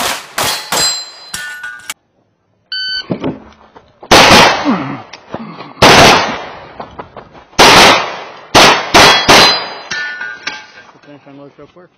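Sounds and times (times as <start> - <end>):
pistol shots: 0.0 - 1.0, 4.1 - 4.7, 5.8 - 6.6, 7.6 - 9.9.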